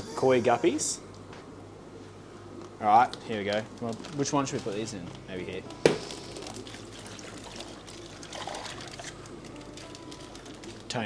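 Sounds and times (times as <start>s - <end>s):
water pouring into a bucket: 6.4s - 9.2s.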